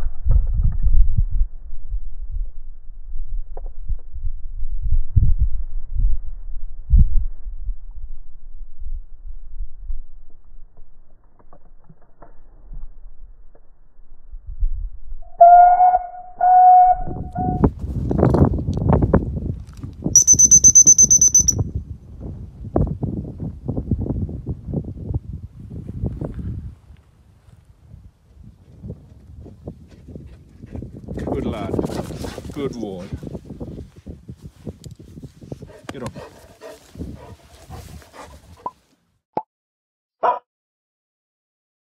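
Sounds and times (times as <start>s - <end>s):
rumbling and knocks on microphone: 0.0s - 1.5s
shrill fluttering whistle: 15.2s - 17.7s, 20.2s - 21.6s
loud whistle blasts: 15.3s - 17.6s, 20.2s - 21.6s
microphone handling rustle: 17.7s - 20.0s, 31.7s - 38.9s
dog breathing and snuffling: 35.4s - 38.8s.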